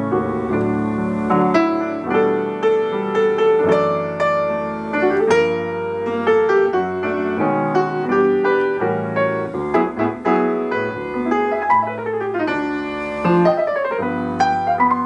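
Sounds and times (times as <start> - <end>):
grand piano playing: 0.0 - 15.0.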